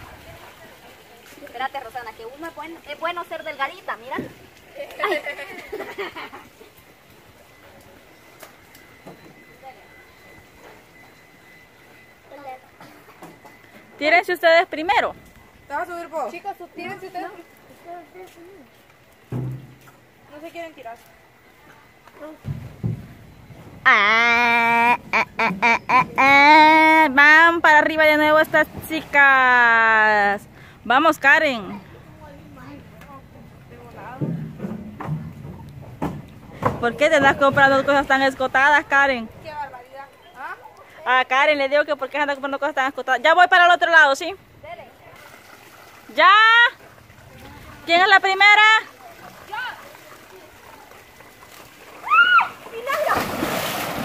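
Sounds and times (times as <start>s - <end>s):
people talking: 25.6s - 34.4s, 36.6s - 45.2s, 46.1s - 50.9s.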